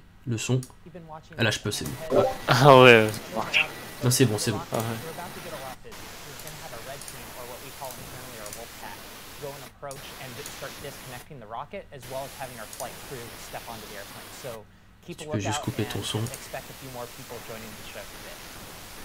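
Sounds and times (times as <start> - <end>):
steady hiss: 1.8 - 19.0.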